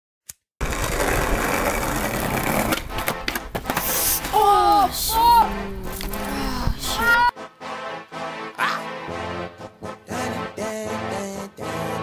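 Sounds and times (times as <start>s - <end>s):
skateboard wheels rolling on asphalt: 0.6s - 7.0s.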